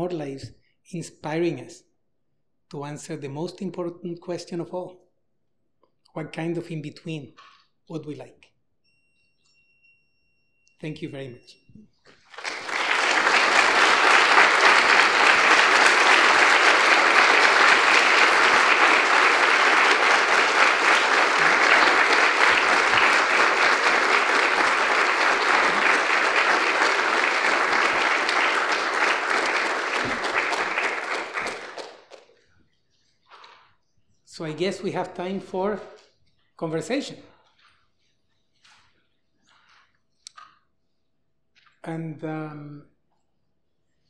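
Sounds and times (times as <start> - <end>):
audience applauding: 12.1 - 32.3.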